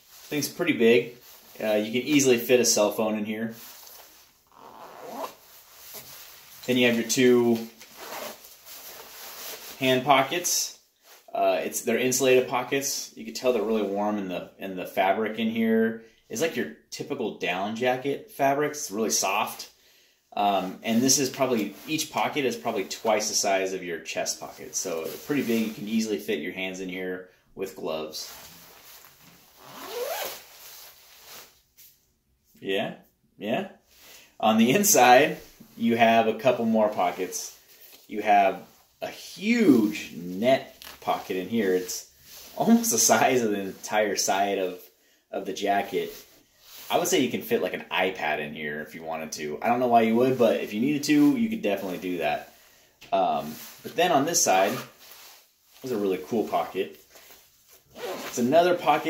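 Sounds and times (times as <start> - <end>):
nylon jacket rustling: 0.0 - 11.3, 20.6 - 26.6, 27.6 - 32.0, 34.0 - 44.9, 45.6 - 47.9, 49.6 - 52.7, 53.4 - 59.0
zipper being unzipped: 4.5 - 6.0, 7.9 - 9.0, 28.6 - 31.4, 57.9 - 58.4.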